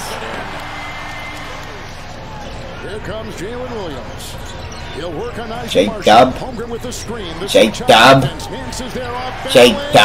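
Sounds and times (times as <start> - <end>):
arena crowd: 0.0 - 10.0
commentator talking: 2.8 - 10.0.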